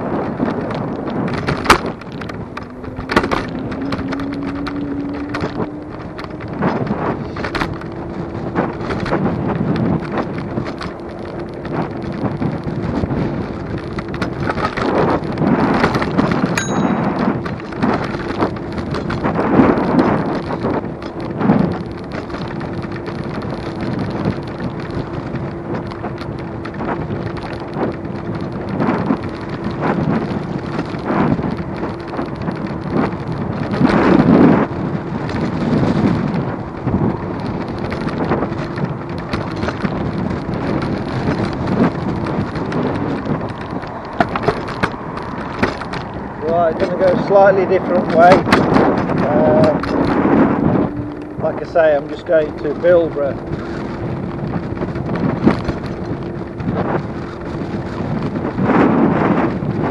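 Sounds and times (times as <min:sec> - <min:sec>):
wind buffeting microphone: 0:00.0 - 0:59.9
electric motor hum: 0:48.8 - 0:55.4.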